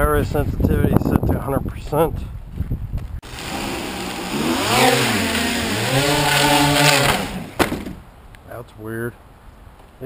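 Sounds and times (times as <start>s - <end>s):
drone propellers whirring: 3.2s - 7.6s
sharp knock: 7.0s - 8.0s.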